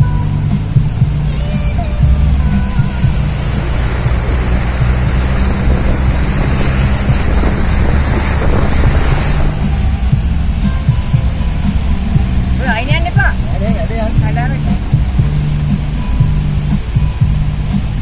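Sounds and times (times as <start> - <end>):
diesel engine running under load: 0.0 - 18.0
water splashing against vehicle: 0.0 - 18.0.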